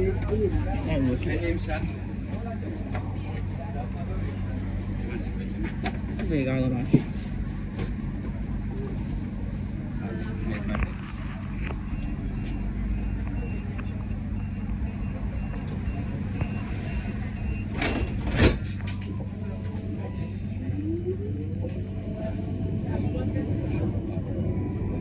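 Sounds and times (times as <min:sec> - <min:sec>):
tram motor whine: 0:00.0 - 0:25.0.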